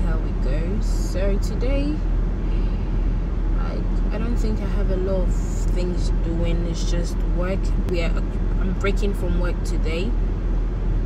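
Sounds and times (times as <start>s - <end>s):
low rumble inside a car: 0.0s - 11.0s.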